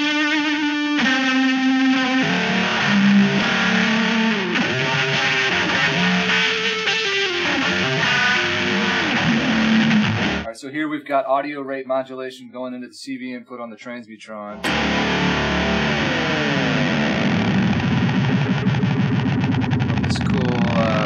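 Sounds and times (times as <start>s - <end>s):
warbling distorted electric guitar: 0.0s - 10.5s, 14.6s - 21.0s.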